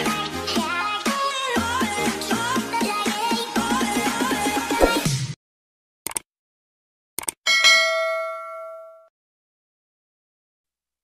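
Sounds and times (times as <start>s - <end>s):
notification bell ding: 7.5s - 9.1s.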